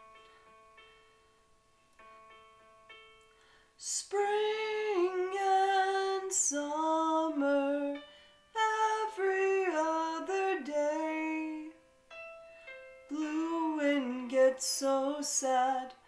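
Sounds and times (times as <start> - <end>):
quiet musical accompaniment: 0.0 - 16.0
woman singing a ballad: 3.8 - 11.8, 13.1 - 16.0.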